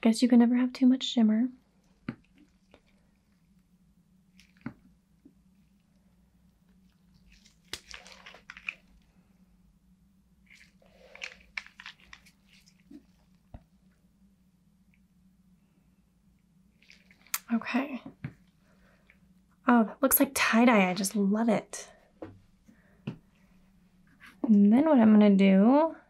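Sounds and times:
faint low hum: 0:00.0 - 0:26.0
plastic bottles clicking and crinkling: 0:07.3 - 0:09.0, 0:10.5 - 0:13.0.

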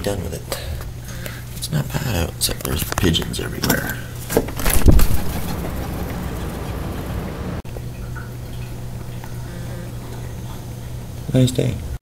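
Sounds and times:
outdoor background hiss: 0:00.0 - 0:12.0
low hum: 0:04.6 - 0:07.6.

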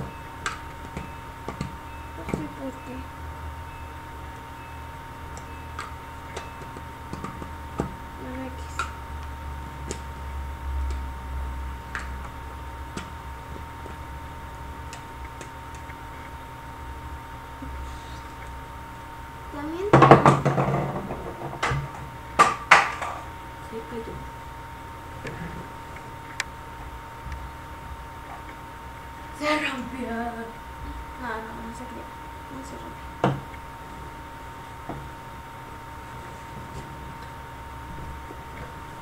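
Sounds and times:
steady electrical hum: 0:00.0 - 0:39.0
hard objects clattering: 0:20.0 - 0:23.4.

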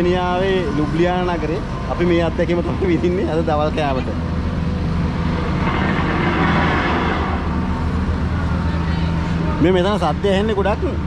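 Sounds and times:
noisy rush: 0:00.0 - 0:11.0
truck engine running: 0:00.0 - 0:11.0.

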